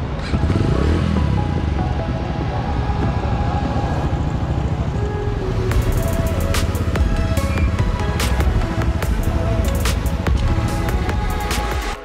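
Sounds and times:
motorcycle engine running: 0.0 - 11.5
background music: 0.0 - 12.0.

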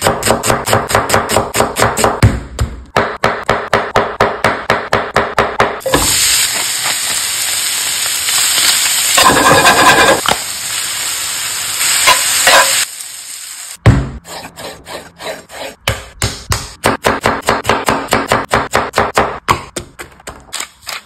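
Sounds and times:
chicken sizzling in frying pan: 5.9 - 13.8
metal spatula scraping pan: 9.2 - 10.3, 12.1 - 12.8.

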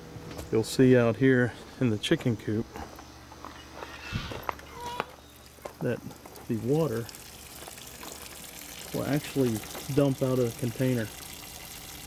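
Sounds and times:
footsteps on gravel: 2.7 - 6.6.

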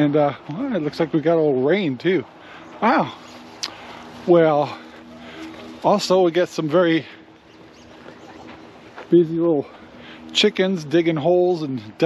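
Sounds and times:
faint bird calls: 7.0 - 9.1.

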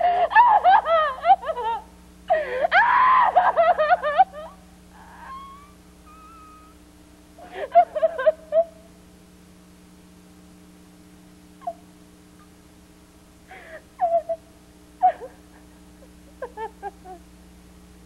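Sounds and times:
woman giggling: 0.0 - 2.6, 3.4 - 6.7, 7.4 - 8.8, 13.6 - 14.4, 15.0 - 17.2.

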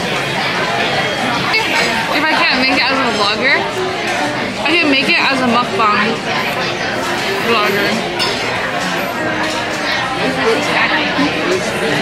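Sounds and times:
many people talking: 0.0 - 12.0
dishes and cutlery clinking: 0.8 - 12.0.

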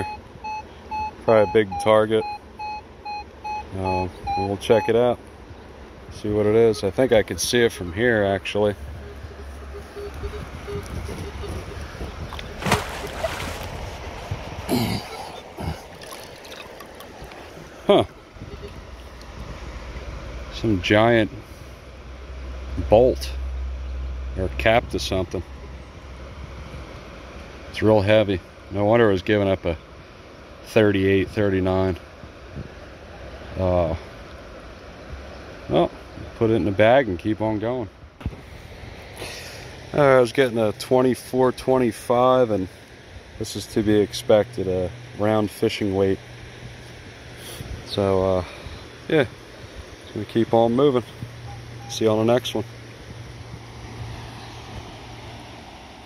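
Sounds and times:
water splashing and sloshing: 7.0 - 20.6, 37.9 - 56.0.

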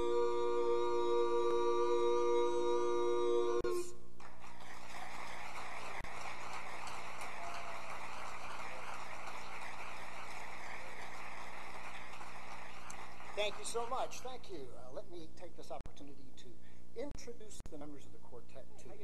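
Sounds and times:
a cappella quartet chord: 0.0 - 4.0
audience applause: 4.2 - 14.6.

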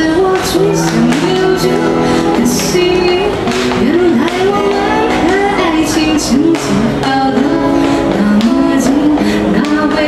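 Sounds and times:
acoustic guitar: 0.0 - 10.0
woman singing pop song: 0.0 - 10.0.

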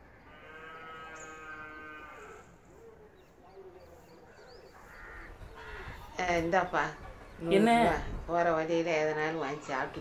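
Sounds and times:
small birds chirping: 0.0 - 8.5
crow cawing: 4.9 - 6.1.

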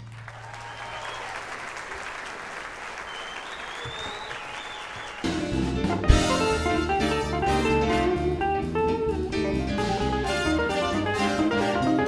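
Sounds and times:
audience applauding: 0.0 - 6.4
drums: 3.6 - 12.0
electric guitar: 5.4 - 12.0.

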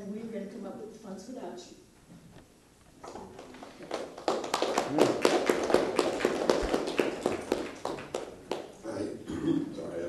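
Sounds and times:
audience applauding: 3.1 - 8.8.

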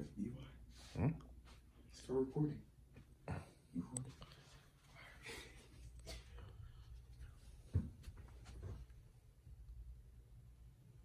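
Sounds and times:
person whispering: 0.0 - 2.2.

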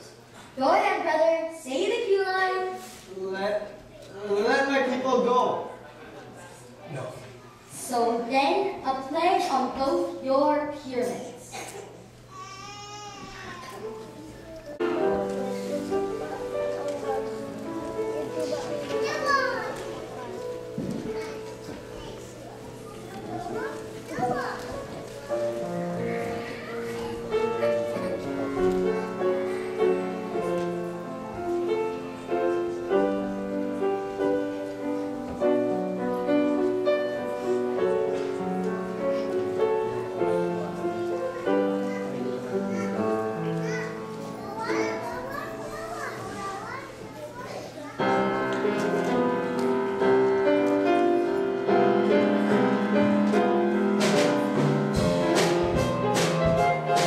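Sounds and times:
children's voices: 0.0 - 3.1, 7.3 - 35.4, 36.4 - 55.0.

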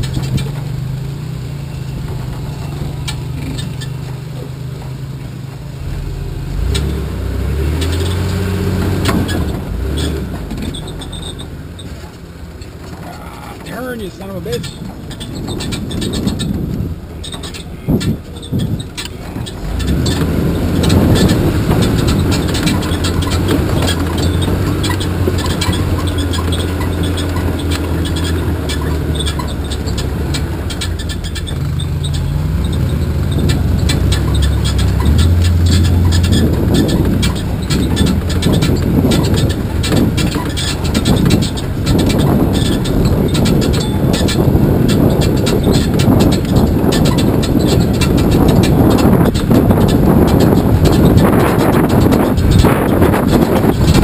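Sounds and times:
knocks and clatters from truck: 0.0 - 54.0
truck engine running: 0.0 - 54.0.

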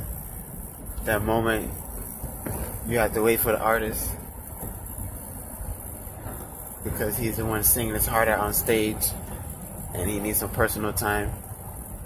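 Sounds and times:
car cabin road noise: 0.0 - 12.0
man talking: 1.0 - 1.8, 2.8 - 4.2, 6.8 - 9.2, 10.0 - 11.4.

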